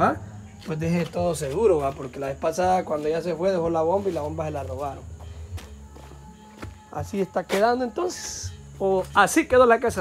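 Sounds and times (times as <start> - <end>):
faint background music: 0.0 - 10.0
quiet footsteps on concrete: 0.5 - 9.4.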